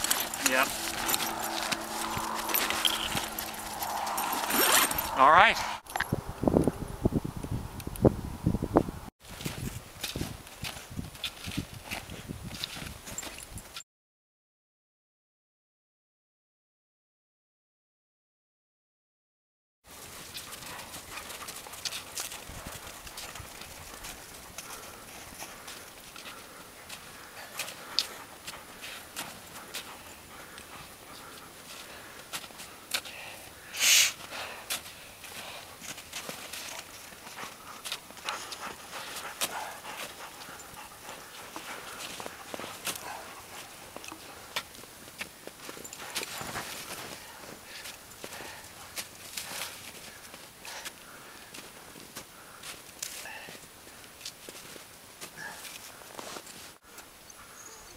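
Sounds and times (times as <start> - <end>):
boots crunching in snow: 0.0 - 5.1, 41.1 - 53.5.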